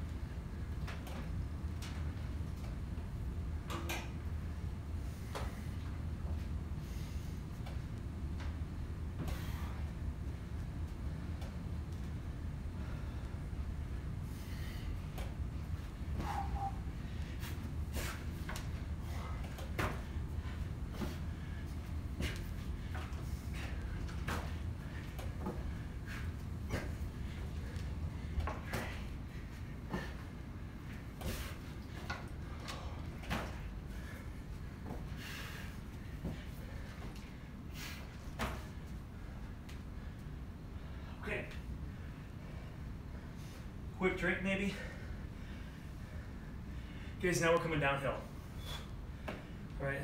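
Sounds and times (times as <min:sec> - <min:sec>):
steady low hum: 0:00.0 - 0:50.0.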